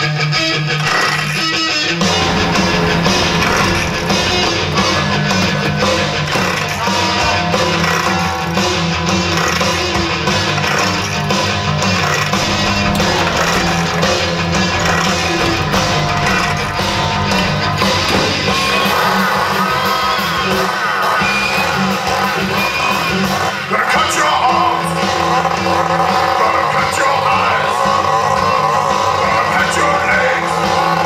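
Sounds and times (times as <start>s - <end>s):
rock music with electric guitar: 0.0s - 31.0s.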